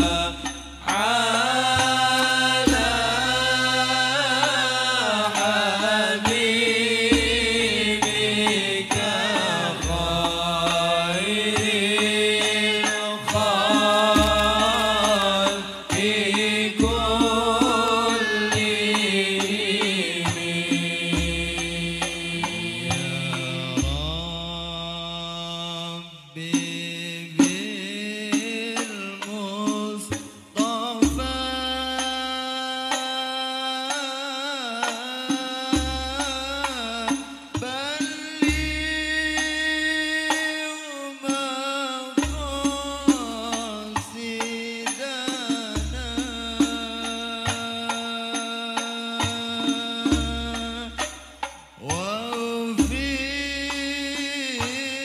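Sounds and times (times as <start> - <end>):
frame drums beating: 0.0 - 3.8, 6.2 - 24.2
men chanting into microphones: 0.0 - 55.0
hand drum strikes: 1.7 - 3.4, 13.3 - 19.1.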